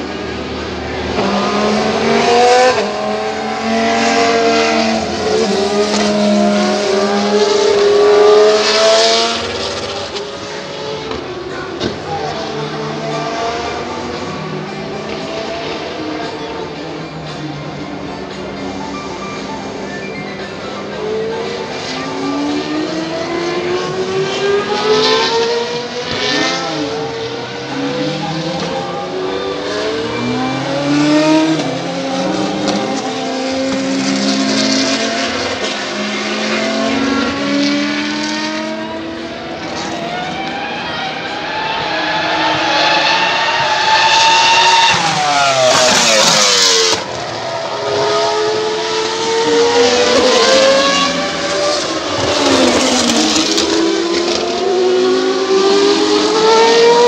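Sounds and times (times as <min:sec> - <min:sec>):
racing car engines revving: 0:00.0 - 0:57.0.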